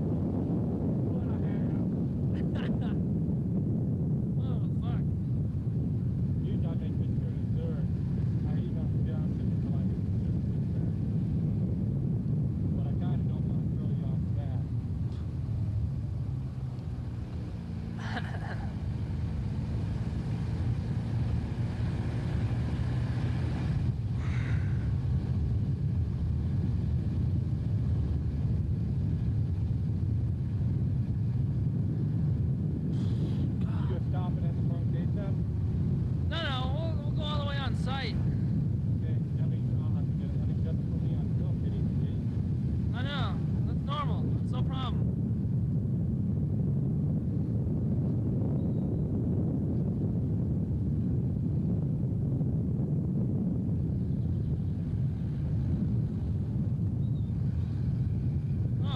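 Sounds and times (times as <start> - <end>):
car engine and road noise: 0.0 - 58.9.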